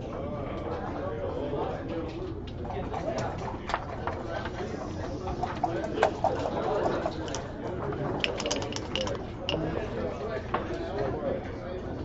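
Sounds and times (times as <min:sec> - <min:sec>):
murmur of people talking: 0:00.0 - 0:12.0
dice clicking and rattling: 0:08.1 - 0:09.7.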